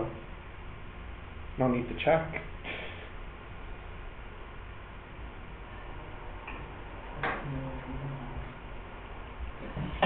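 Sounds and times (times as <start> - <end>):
background hiss: 0.0 - 10.0
low steady hum: 0.0 - 10.0.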